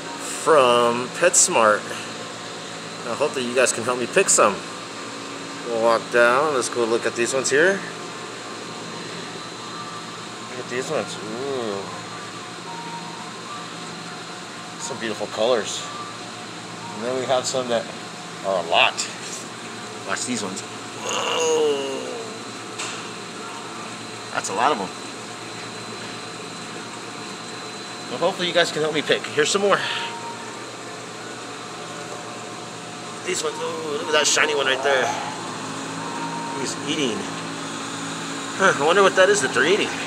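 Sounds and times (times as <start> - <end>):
aquarium filtration hum and hiss: 0.0 - 40.0
thin high whine: 16.8 - 40.0.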